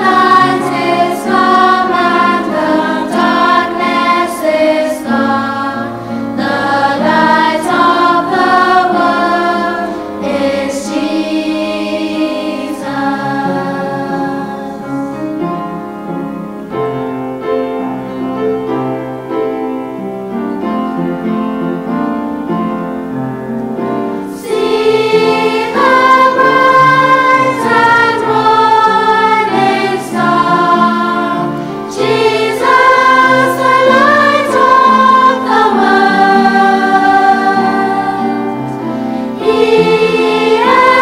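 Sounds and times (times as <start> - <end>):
choir singing: 0.0 - 15.5, 24.3 - 41.0
keyboard chords: 0.0 - 41.0.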